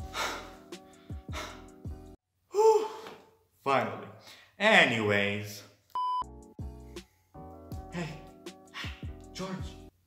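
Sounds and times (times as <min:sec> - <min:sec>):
young man sighing: 0:02.5 - 0:03.3.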